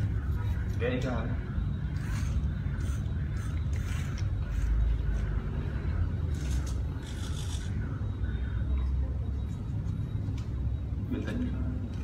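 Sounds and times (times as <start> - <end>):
servo motors whirring: 1.9 - 5.4, 6.3 - 7.9.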